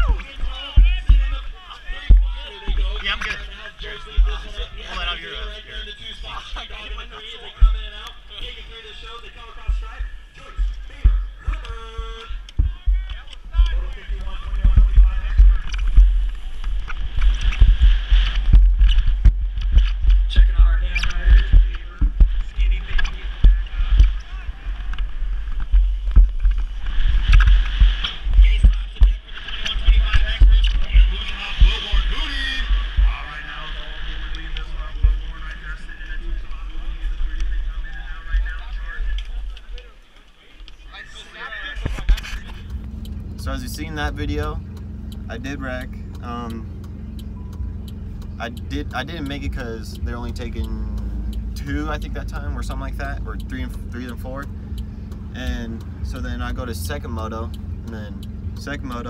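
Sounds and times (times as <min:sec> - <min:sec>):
background voices: 0:00.0 - 0:59.0
bike tyre riding noise: 0:00.0 - 0:59.0
wind buffeting microphone: 0:09.2 - 0:35.2.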